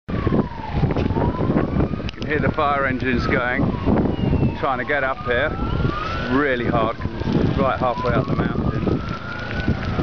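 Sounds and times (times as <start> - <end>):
fire engine siren wailing: 0.1 - 10.0.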